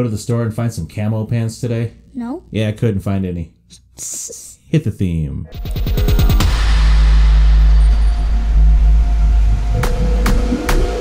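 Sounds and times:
deep bass rumble music: 0:05.6 - 0:11.0
low tone: 0:06.0 - 0:11.0.

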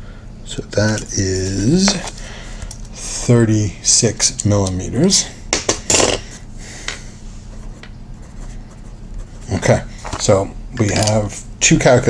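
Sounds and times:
fountain pen scratching on paper: 0:07.5 - 0:09.8.

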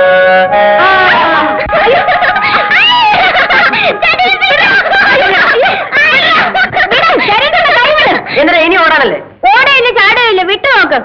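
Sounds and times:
children laughing: 0:00.8 - 0:08.5.

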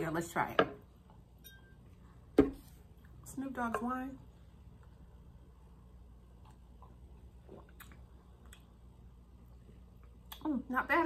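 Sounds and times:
wine glass clink: 0:01.4 - 0:01.8.

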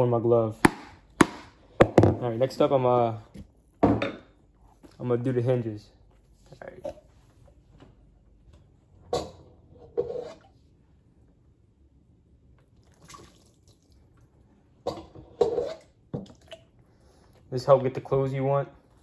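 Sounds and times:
water splashing and dripping: 0:12.7 - 0:14.2.

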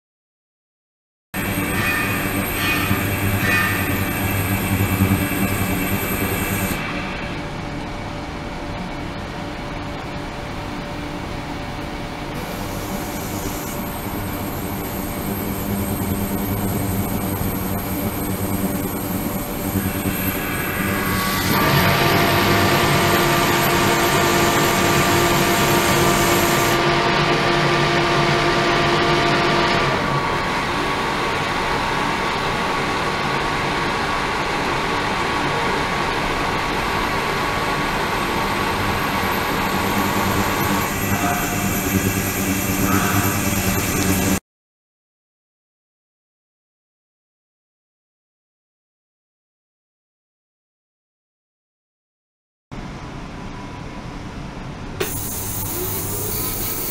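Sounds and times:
steady hums: 0:01.4 - 0:44.4.

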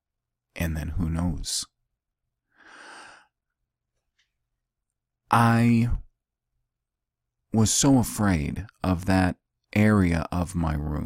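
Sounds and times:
man breathing out: 0:02.5 - 0:03.4.

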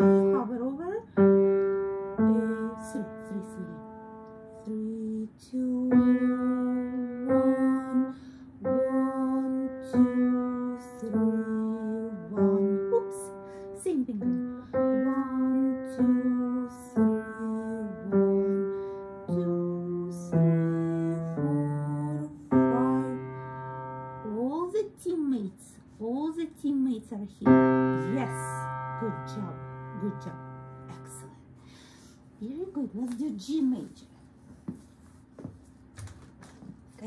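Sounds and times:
slow single piano notes: 0:00.0 - 0:05.2, 0:05.8 - 0:24.4, 0:27.5 - 0:31.4.

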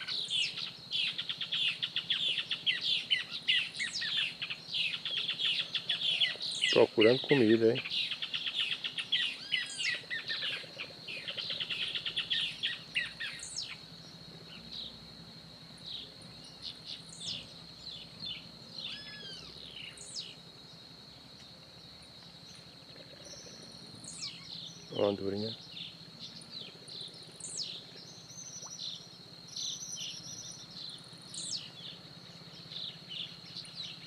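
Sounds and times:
wild birds calling: 0:00.0 - 0:15.1, 0:15.7 - 0:34.0.

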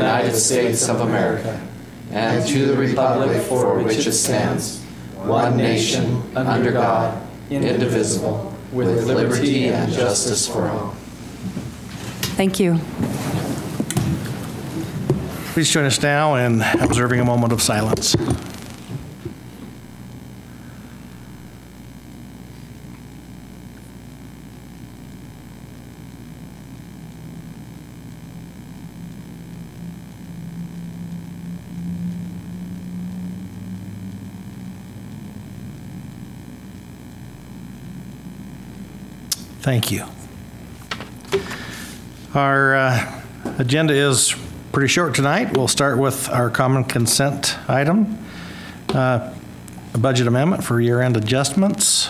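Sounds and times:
low background hum: 0:00.0 - 0:52.0
people rustling and shuffling: 0:06.6 - 0:15.7
low pitched tones: 0:24.9 - 0:39.4.

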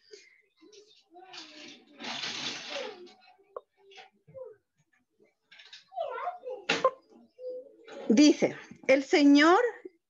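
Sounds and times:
faint voices: 0:00.0 - 0:08.7
rustling handling noise: 0:00.2 - 0:04.3.

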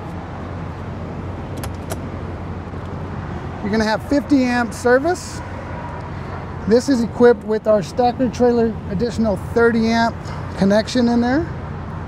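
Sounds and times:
latch clicks: 0:01.5 - 0:02.1.

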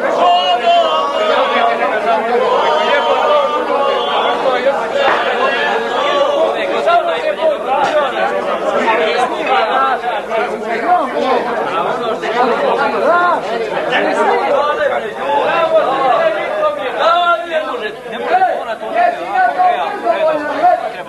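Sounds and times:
men talking over one another: 0:00.0 - 0:21.0.

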